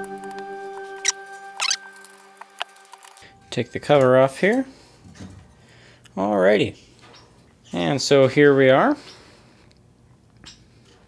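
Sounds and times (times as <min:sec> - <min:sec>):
background music: 0:00.0 - 0:04.9.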